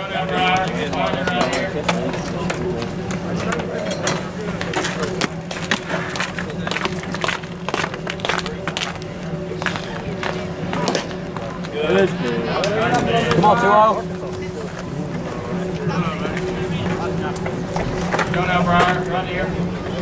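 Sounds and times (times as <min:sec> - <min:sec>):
spectator chatter: 0:00.0 - 0:20.0
steady low hum: 0:00.0 - 0:20.0.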